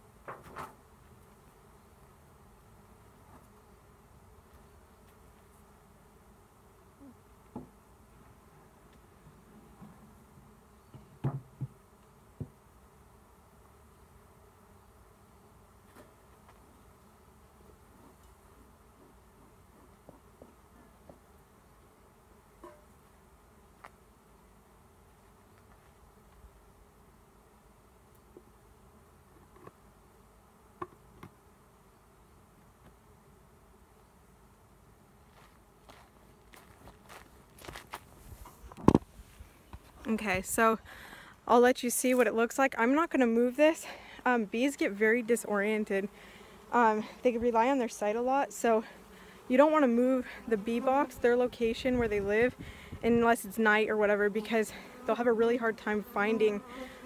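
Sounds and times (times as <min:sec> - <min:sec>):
knocks on hive box: 0:11.0 - 0:11.8
bees buzzing: 0:39.5 - 0:57.0.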